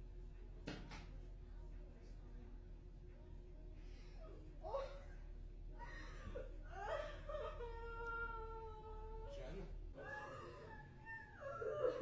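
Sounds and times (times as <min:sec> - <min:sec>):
woman wailing sobs: 0:10.0 - 0:12.0.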